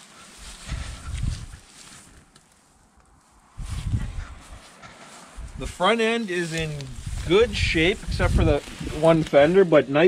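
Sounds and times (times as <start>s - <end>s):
faint rustling of grass: 0.0s - 10.0s
microphone handling rumble: 0.5s - 2.3s, 3.0s - 5.9s, 6.5s - 9.6s.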